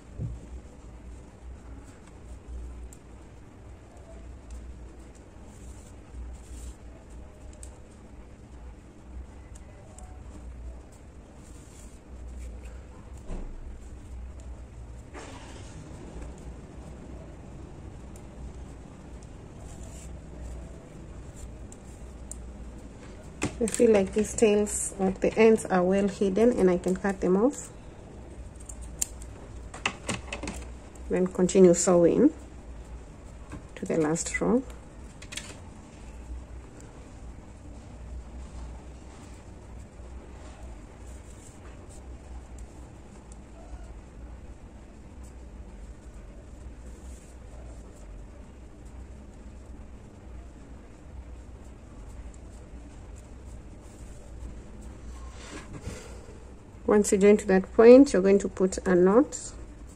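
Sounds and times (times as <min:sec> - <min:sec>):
yarn rustling: 0:00.0 - 0:29.7
low steady rumble: 0:00.0 - 0:59.9
scissors snipping yarn: 0:28.6 - 0:29.3.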